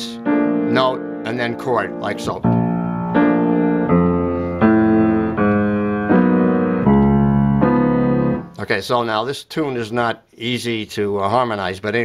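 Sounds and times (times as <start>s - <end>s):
grand piano stride playing: 0.0s - 8.8s.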